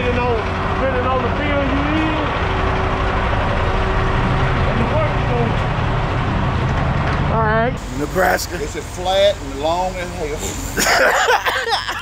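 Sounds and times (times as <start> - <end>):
diesel truck engine idling: 0.0 - 12.0.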